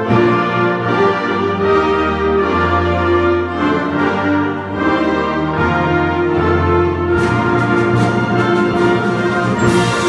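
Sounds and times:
concert wind band playing: 0:00.0 - 0:10.0.

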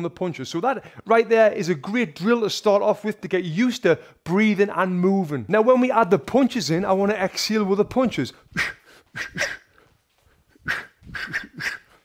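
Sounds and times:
boxer exhaling sharply: 0:10.6 - 0:12.0.

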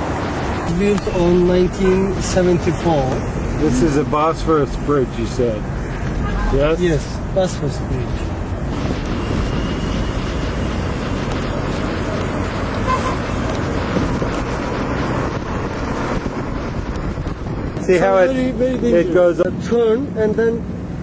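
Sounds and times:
wind and road noise inside car: 0:00.0 - 0:21.0.

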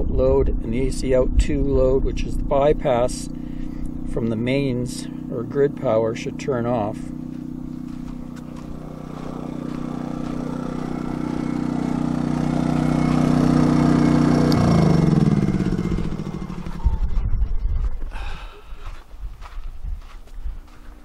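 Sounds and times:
portable generator engine running: 0:00.3 - 0:18.9.

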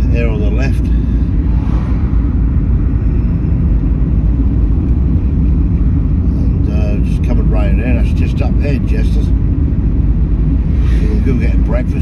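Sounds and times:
car engine and tyre noise: 0:00.0 - 0:12.0
van passing: 0:00.0 - 0:12.0.

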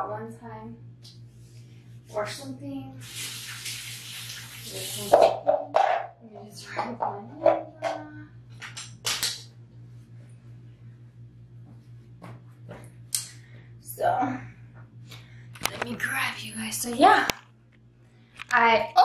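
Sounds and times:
low steady hum: 0:00.0 - 0:19.0
sink tap running: 0:03.0 - 0:05.7.

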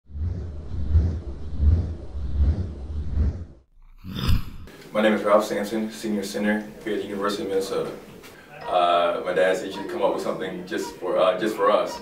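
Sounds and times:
deep rumbling intro effect: 0:00.1 - 0:04.7.

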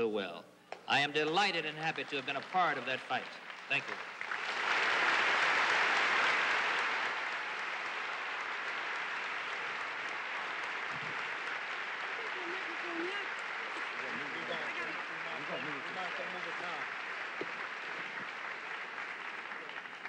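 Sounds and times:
large audience applauding: 0:00.9 - 0:20.0
voices: 0:12.0 - 0:16.9.

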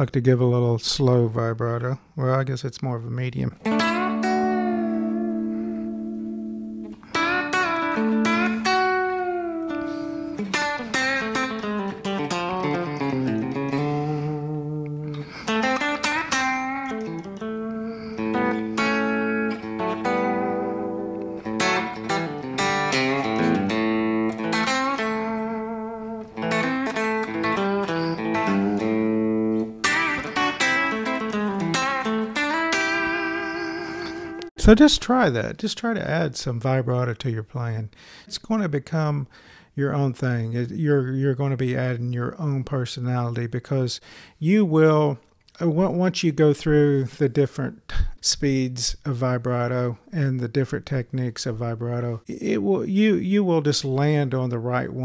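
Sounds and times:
electric guitar lead with vibrato: 0:03.6 - 0:34.6.

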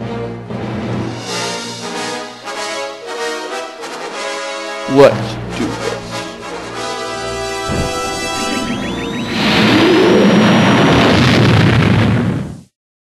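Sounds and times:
orchestral film music: 0:00.0 - 0:09.9
loud noisy blast: 0:06.4 - 0:12.7
whine rising in pitch: 0:07.6 - 0:11.2.

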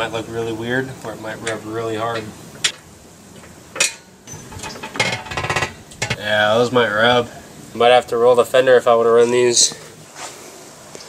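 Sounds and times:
rapid metallic rattling: 0:03.8 - 0:06.2.

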